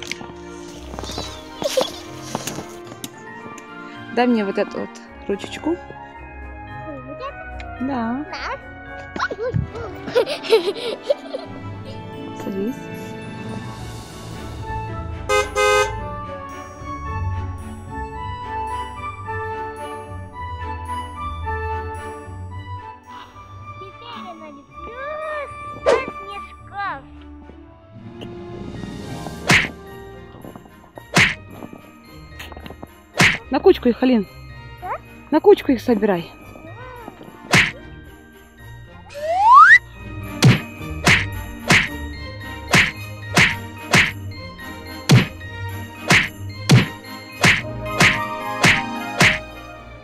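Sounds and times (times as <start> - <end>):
background music: 0.0 - 50.0
horn toots: 15.3 - 16.1
rising slide whistle: 39.2 - 39.8.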